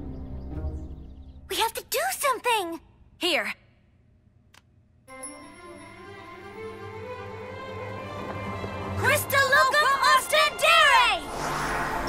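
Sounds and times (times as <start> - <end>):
background music: 0.0 - 2.0, 5.1 - 12.0
bright swooping magic tones: 10.1 - 12.0.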